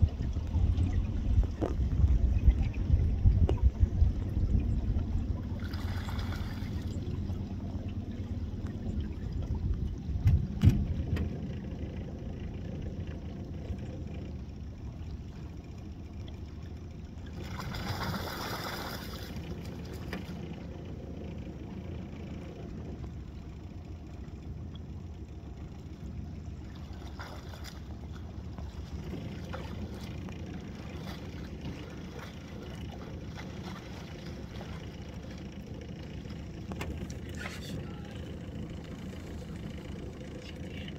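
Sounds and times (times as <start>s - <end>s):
wind rumble on microphone: 0.0s - 15.6s
low steady rumble: 0.0s - 40.9s
water sloshing: 0.0s - 40.9s
animal splashing in shallow water: 5.4s - 8.0s, 17.2s - 20.6s, 26.6s - 37.7s.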